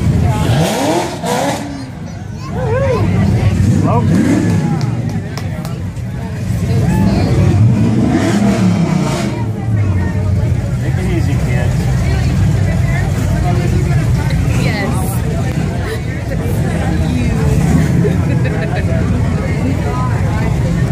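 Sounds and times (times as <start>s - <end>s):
car engine rumbling and revving: 0.0s - 20.9s
crowd chatter: 0.0s - 20.9s.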